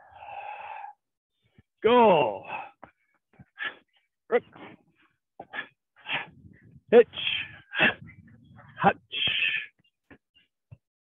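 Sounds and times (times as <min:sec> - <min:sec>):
man calling out: 0:01.8 - 0:02.6, 0:06.9 - 0:08.0.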